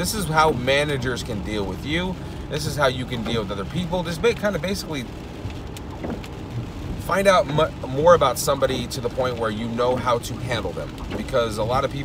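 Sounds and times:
car engine running: 0.0 - 12.0
tyres on a wet road: 0.0 - 12.0.

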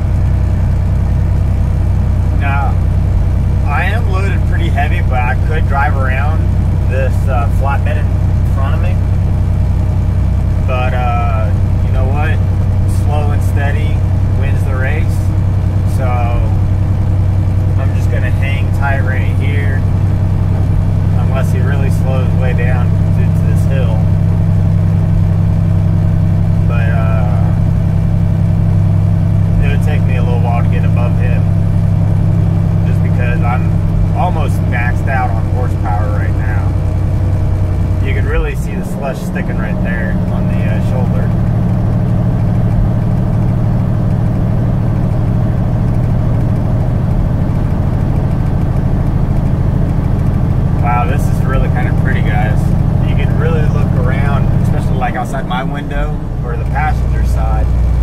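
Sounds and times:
truck diesel engine droning: 0.0 - 58.0.

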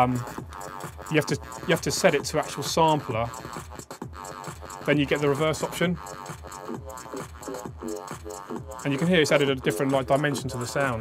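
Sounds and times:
electronic drum beat: 0.0 - 11.0
reversed sampled bass loop: 0.0 - 11.0.

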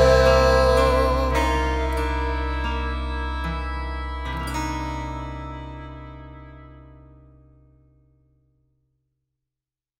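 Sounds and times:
music closing chord held: 0.0 - 7.0.

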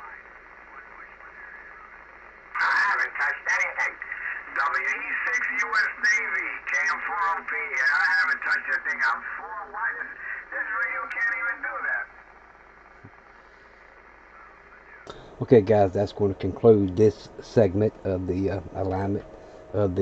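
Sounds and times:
voice over radio speaker: 0.0 - 12.2, 14.2 - 20.0
faint receiver hiss: 8.2 - 20.0.

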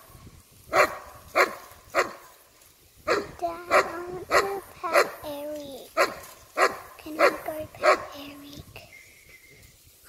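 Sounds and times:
dog barking: 0.7 - 2.2, 3.1 - 5.3, 6.0 - 8.2.

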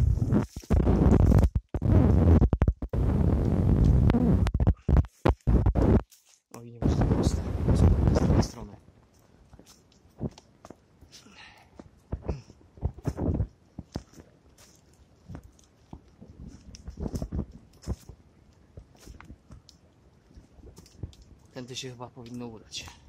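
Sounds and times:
footsteps crunching through leaves: 6.0 - 6.5, 14.0 - 18.2.

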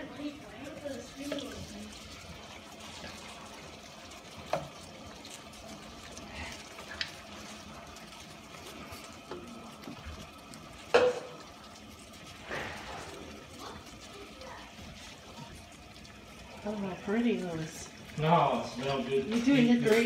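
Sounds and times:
wooden spatula stirring in a pan: 0.0 - 20.0
food hissing in a frying pan: 11.0 - 18.8.

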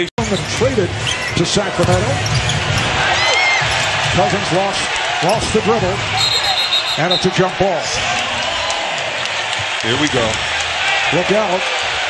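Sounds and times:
arena crowd noise: 0.0 - 12.0
sneakers squeaking on court: 0.2 - 4.1.

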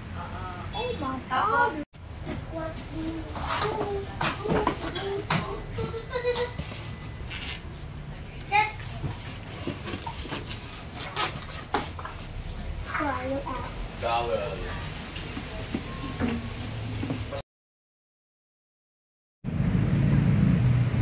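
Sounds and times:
child chattering: 2.5 - 6.8
crinkling plastic and cardboard: 8.9 - 17.4.

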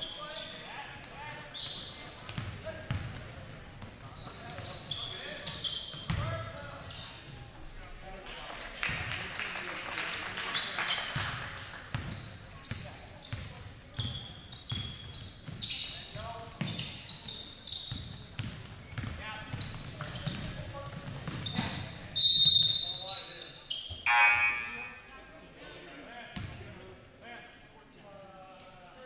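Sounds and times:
sneakers squeaking on wooden floor: 0.0 - 7.2, 11.8 - 25.1
voices of players and spectators: 0.0 - 29.0
basketball bouncing: 2.3 - 3.9, 18.4 - 21.4
referee's whistle blowing: 22.2 - 23.3, 24.0 - 25.1.

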